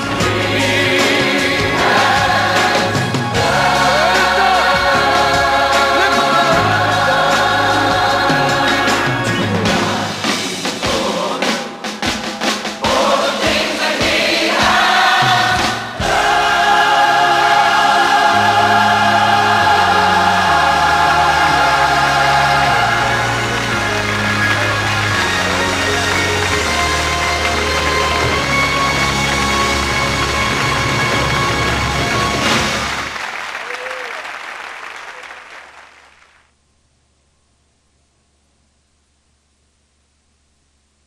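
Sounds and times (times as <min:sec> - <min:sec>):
gospel choir singing: 0:00.0 - 0:32.9
band accompaniment with bass: 0:00.0 - 0:33.2.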